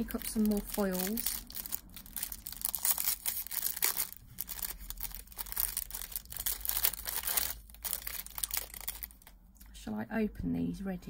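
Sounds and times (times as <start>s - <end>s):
plastic packaging crinkling: 0.0s - 9.4s.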